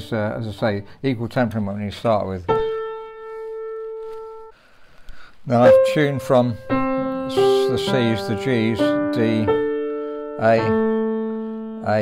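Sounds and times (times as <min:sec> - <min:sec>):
piano note ringing: 0:02.5 - 0:04.5, 0:05.5 - 0:12.0.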